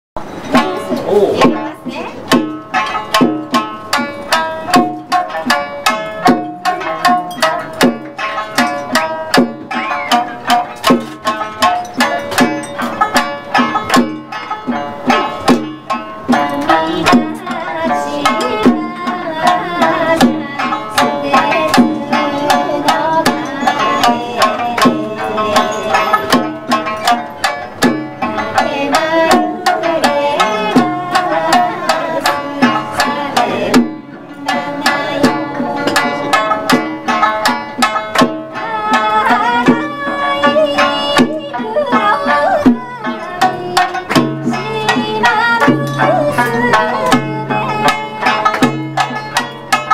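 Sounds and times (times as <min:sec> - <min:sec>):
hand drum strikes: 0:00.2 - 0:49.9
plucked lute melody: 0:00.2 - 0:49.9.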